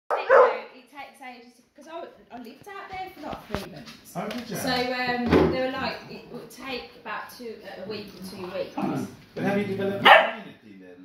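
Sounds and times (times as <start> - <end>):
dog barking: 0.1 - 0.6, 10.0 - 10.5.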